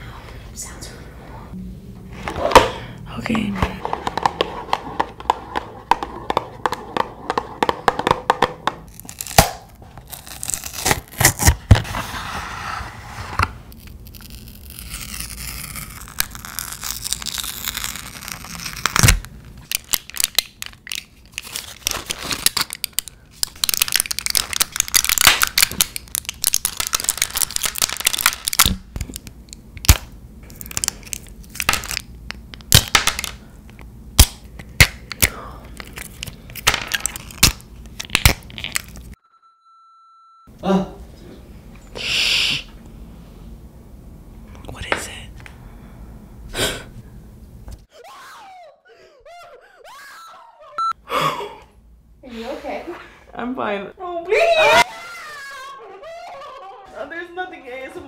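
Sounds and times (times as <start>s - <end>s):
foil blister packs crinkling: 13.8s - 33.4s.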